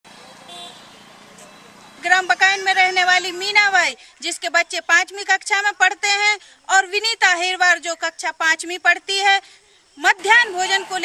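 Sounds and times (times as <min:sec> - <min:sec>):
low steady hiss: 0:00.1 - 0:11.0.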